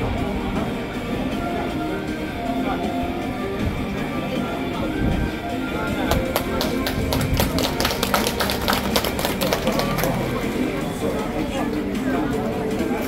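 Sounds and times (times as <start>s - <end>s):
people talking: 0.0s - 13.0s
procession music: 0.8s - 11.0s.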